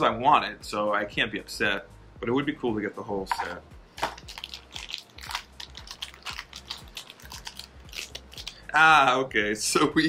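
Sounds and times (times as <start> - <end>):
plastic package crackling: 4.0 - 8.6.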